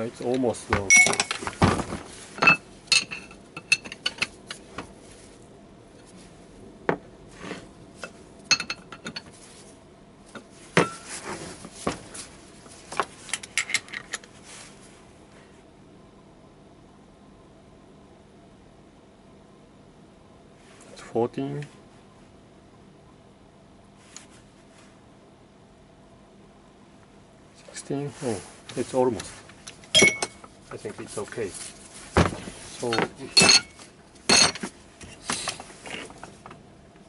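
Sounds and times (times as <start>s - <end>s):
faint steady hum: 0.0s - 37.0s
metal parts clinking: 0.9s - 1.6s, 2.4s - 4.6s, 30.0s - 30.4s, 32.8s - 34.7s.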